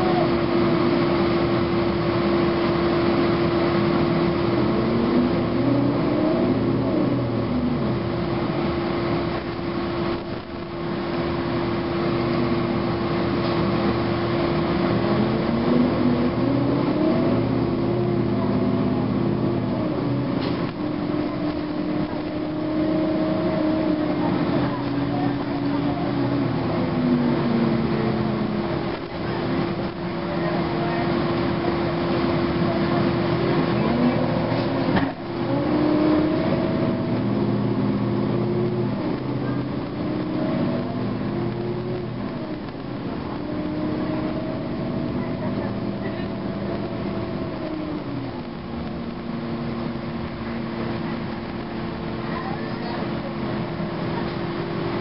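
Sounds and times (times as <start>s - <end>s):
bus diesel engine: 0.0s - 55.0s
steady whine: 0.0s - 55.0s.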